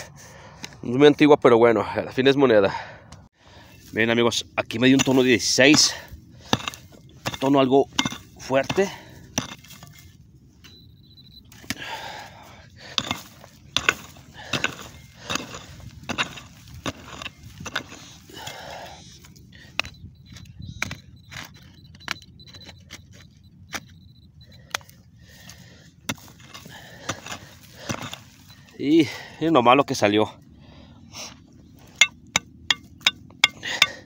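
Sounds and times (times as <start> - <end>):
soil crumbling and scraping: 3.5 - 34.0.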